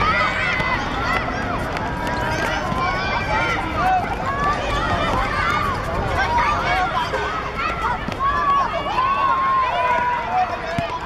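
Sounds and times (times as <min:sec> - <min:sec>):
children shouting and calling: 0:00.0 - 0:11.0.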